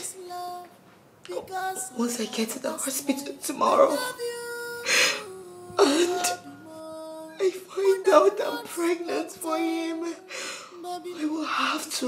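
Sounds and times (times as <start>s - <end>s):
soft music of held chords: 1.3s - 12.0s
woman sobbing: 3.0s - 12.0s.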